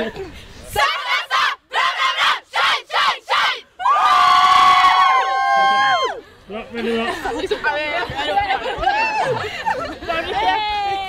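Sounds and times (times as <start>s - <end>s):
young women cheering: 3.8s - 6.2s.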